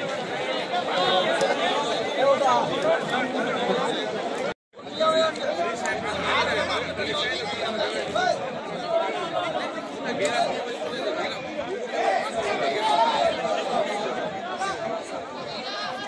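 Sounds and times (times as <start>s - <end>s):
crowd talking: 0.0s - 16.0s.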